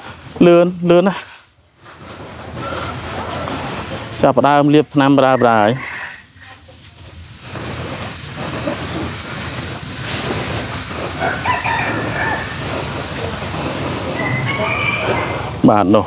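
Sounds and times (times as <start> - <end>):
outdoor background noise: 0.0 - 16.0
chickens calling: 1.8 - 15.8.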